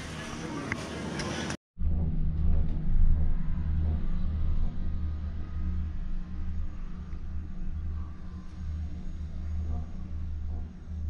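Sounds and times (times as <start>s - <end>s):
cable car gondola rumble: 1.8s - 11.0s.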